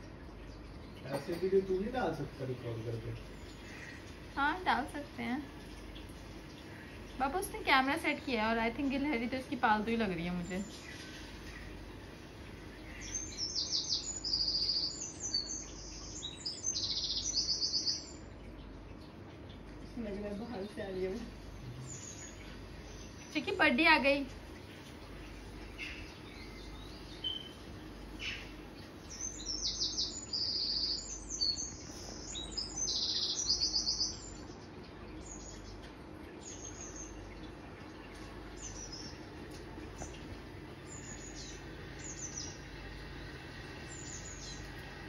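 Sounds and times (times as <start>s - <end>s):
small birds chirping from speakers: 0.0s - 45.0s.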